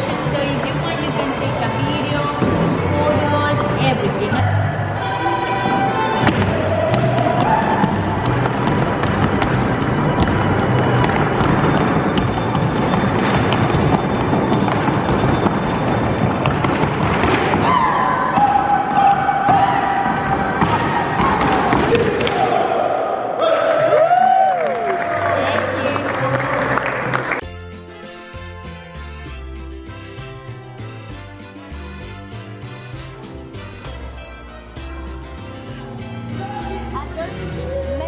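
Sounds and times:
folk dance music: 0:00.0 - 0:22.3, 0:26.2 - 0:38.0
footwork stamping on wooden stage: 0:06.2 - 0:22.2.

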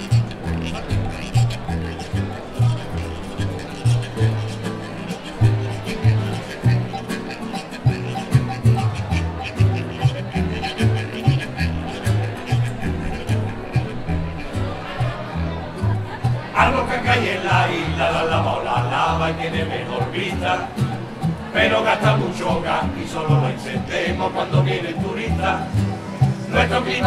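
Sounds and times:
pulsing bass line: 0:00.0 - 0:27.0
strummed acoustic guitars: 0:00.0 - 0:27.0.

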